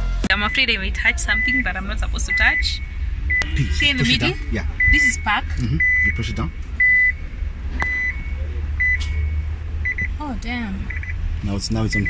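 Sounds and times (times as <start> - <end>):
high steady warning beeps: 0.3 - 12.0.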